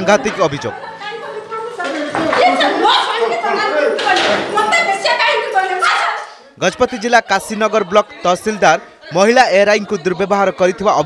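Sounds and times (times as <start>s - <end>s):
overlapping raised voices: 0.0s - 11.0s.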